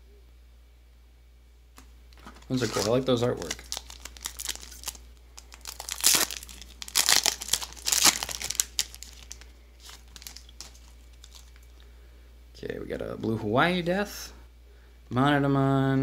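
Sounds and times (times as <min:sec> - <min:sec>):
foil pack crinkling and tearing: 0:02.3 - 0:11.7.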